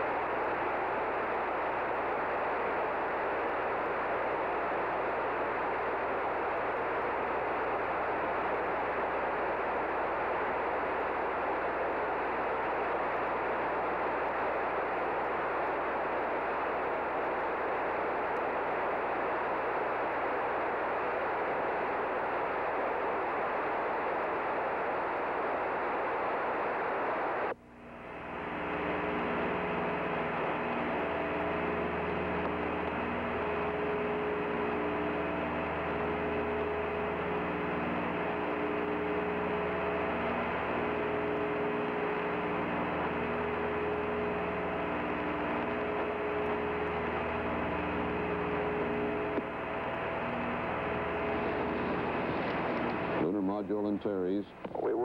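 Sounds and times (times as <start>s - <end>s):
hiss with multi-tone hum: 0.0s - 55.0s
radio static hiss: 0.0s - 55.0s.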